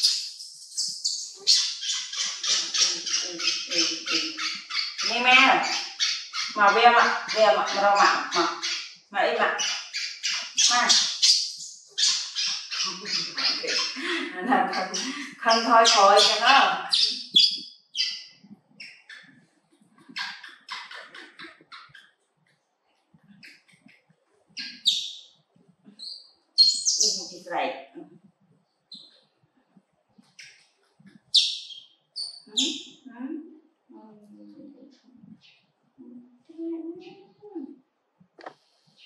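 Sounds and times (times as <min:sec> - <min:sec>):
baby monkey high-pitched calls: 0:00.0 - 0:19.3, 0:26.0 - 0:27.4, 0:31.3 - 0:33.0
woman talking: 0:02.5 - 0:05.8, 0:06.5 - 0:09.7, 0:10.6 - 0:11.0, 0:12.9 - 0:17.2, 0:27.0 - 0:28.2, 0:32.5 - 0:35.0, 0:36.0 - 0:37.8.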